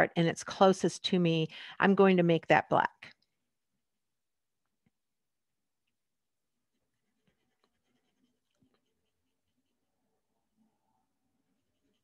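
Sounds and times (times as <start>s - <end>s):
pencil scratching on paper: 6.6s - 12.0s.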